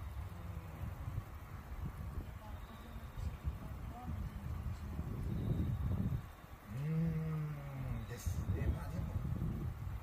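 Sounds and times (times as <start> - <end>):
man humming: 6.7 - 8.0.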